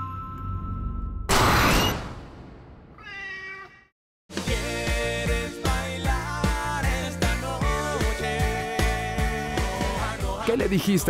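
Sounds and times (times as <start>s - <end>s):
cat meow: 3.0s - 3.9s.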